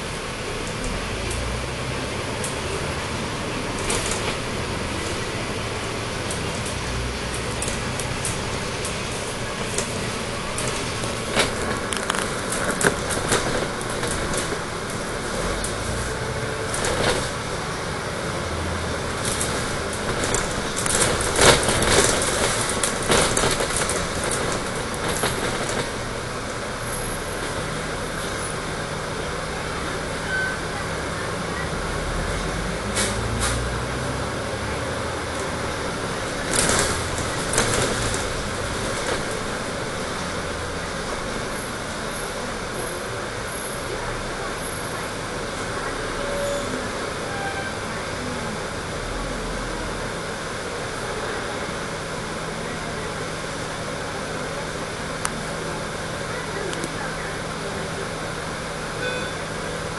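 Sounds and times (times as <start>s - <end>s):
bus engine and road noise: 0.0s - 59.9s
knocks and rattles: 19.2s - 26.0s.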